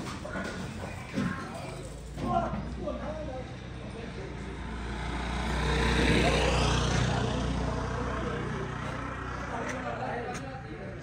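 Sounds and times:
background voices: 0:00.0 - 0:11.0
vehicle engine passing by: 0:03.1 - 0:11.0.

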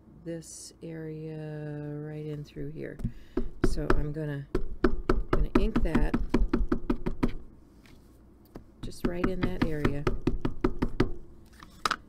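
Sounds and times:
hollow plastic tapping: 0:02.9 - 0:07.5, 0:08.5 - 0:11.2.

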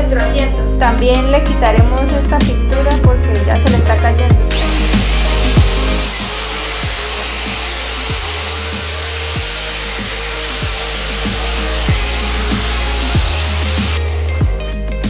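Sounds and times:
background music with steady beat: 0:00.0 - 0:15.0
angle grinder wire brush on steel: 0:04.5 - 0:14.0.

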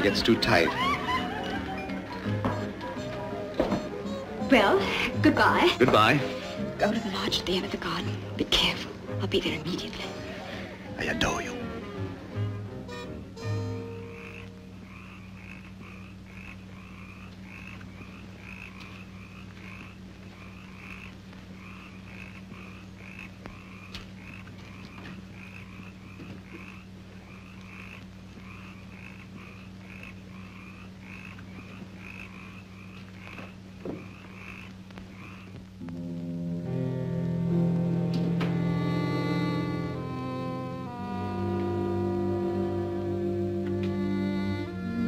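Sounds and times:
low steady hum: 0:00.0 - 0:45.0
frogs croaking: 0:12.9 - 0:37.6.

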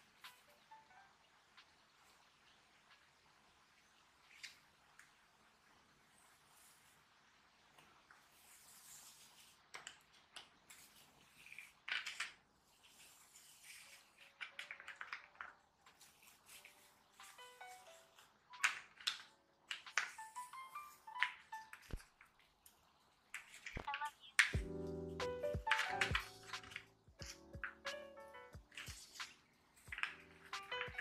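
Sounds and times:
soft background music: 0:00.0 - 0:04.2, 0:12.9 - 0:23.2, 0:23.8 - 0:31.0
paper backing crackling and rustling: 0:04.1 - 0:24.6, 0:25.6 - 0:28.0, 0:28.6 - 0:31.0.

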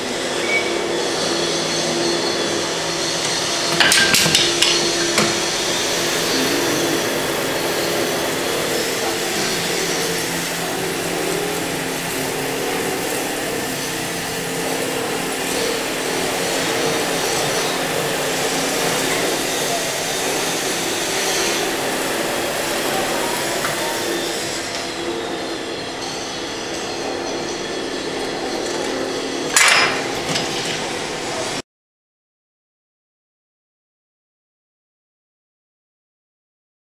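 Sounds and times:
winding machine whirring: 0:00.0 - 0:31.6
sharp machine clack: 0:25.8 - 0:31.0.

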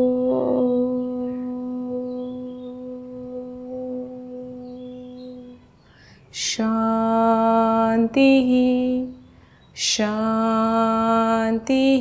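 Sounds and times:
woman chanting om: 0:00.0 - 0:12.0.

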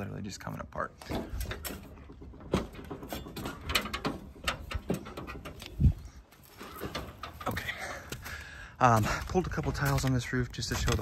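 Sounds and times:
footsteps on roof tiles: 0:01.0 - 0:11.0.

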